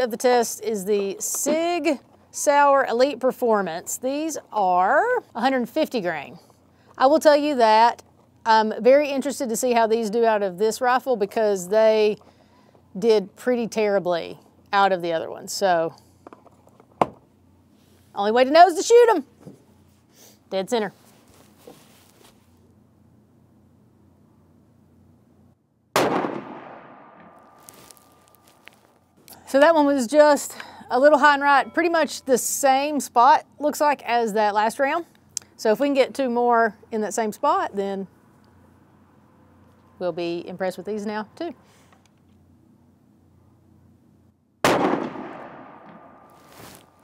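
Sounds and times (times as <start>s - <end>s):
rifle shot with echo: 26.0s - 27.6s, 44.6s - 46.3s.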